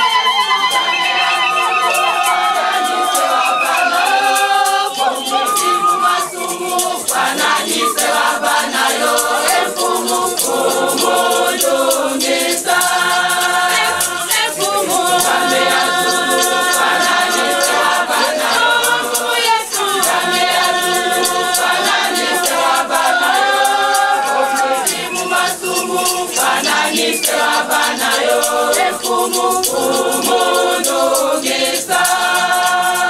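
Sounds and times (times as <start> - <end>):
hand claps: 0.0 - 33.0
hand shaker: 0.0 - 33.0
women's choir singing a hymn: 0.0 - 33.0.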